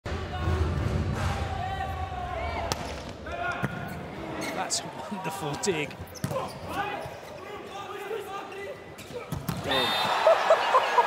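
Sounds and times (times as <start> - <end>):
crowd noise and voices: 0.0 - 11.0.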